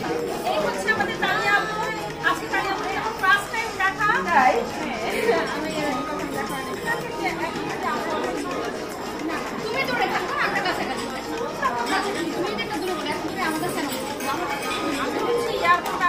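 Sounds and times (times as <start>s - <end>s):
crowd chatter in a large hall: 0.0s - 16.0s
women talking: 0.4s - 8.6s, 9.6s - 16.0s.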